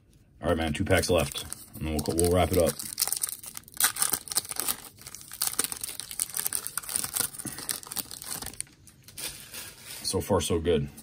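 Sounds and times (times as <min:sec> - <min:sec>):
foil wrapper tearing and crinkling: 0:01.1 - 0:09.9.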